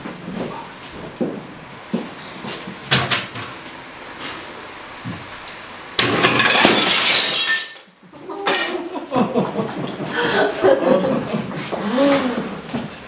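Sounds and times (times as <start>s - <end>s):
glass shards clattering: 6.0s - 7.9s, 8.5s - 8.8s
glass smashing: 6.0s - 7.9s.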